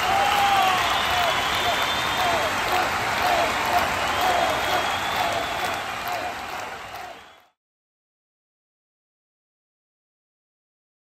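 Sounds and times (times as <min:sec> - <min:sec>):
crowd voices: 0:00.0 - 0:07.4
audience applauding: 0:00.0 - 0:07.6.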